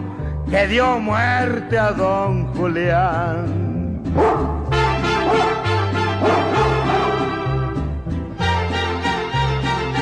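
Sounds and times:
mariachi band playing: 0:00.0 - 0:10.0
dog barking: 0:04.2 - 0:07.4.

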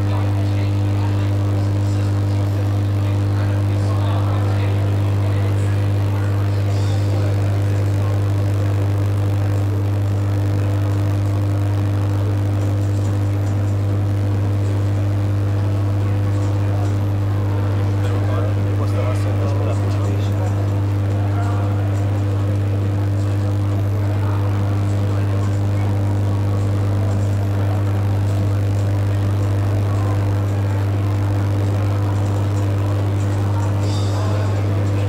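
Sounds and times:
faint indistinct voices: 0:00.0 - 0:35.0
loud steady low hum: 0:00.0 - 0:35.0.

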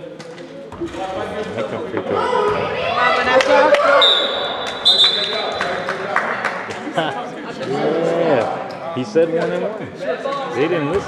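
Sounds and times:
referee's whistle: 0:04.0 - 0:05.8.

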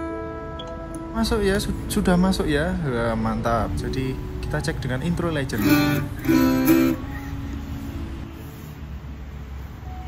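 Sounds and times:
acoustic guitar chord: 0:05.5 - 0:07.6.

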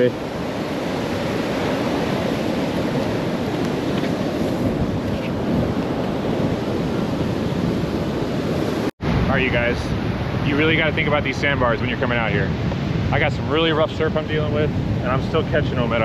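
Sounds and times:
rough surf breaking: 0:00.0 - 0:16.0
wind buffeting microphone: 0:00.0 - 0:16.0.

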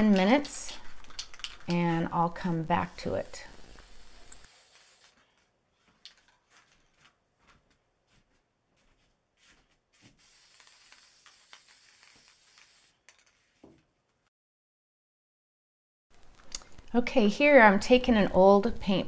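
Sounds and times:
aerosol spray can hissing: 0:02.9 - 0:05.2, 0:10.2 - 0:13.0.

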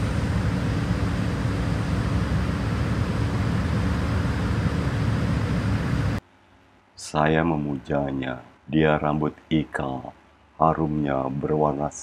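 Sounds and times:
faint steady hum: 0:00.0 - 0:12.0
low mechanical rumble: 0:00.0 - 0:12.0.

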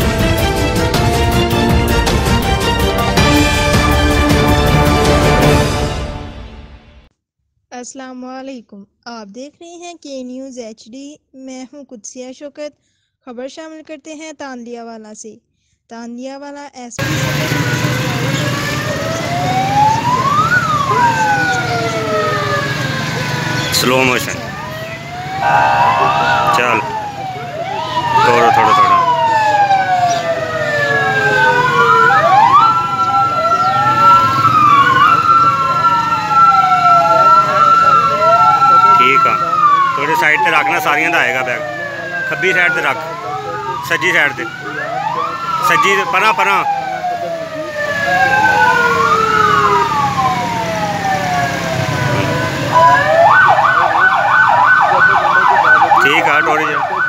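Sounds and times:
police sirens wailing: 0:00.0 - 0:06.6, 0:17.0 - 0:57.0
siren steady tone: 0:17.0 - 0:57.0.

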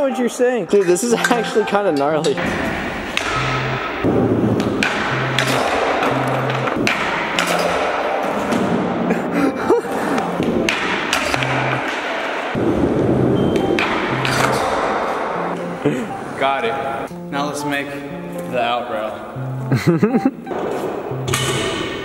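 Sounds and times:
background music with bass line: 0:01.2 - 0:07.8, 0:09.5 - 0:11.8, 0:12.6 - 0:18.6, 0:19.2 - 0:22.0.

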